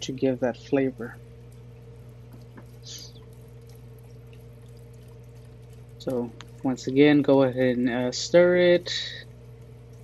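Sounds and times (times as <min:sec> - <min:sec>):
low steady hum: 0:00.0 - 0:10.0
liquid pouring into a pot: 0:01.4 - 0:07.7.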